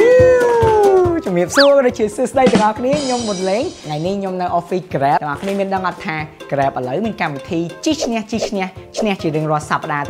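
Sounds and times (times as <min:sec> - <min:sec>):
whistling tone sweeping: 0:01.5 - 0:01.9.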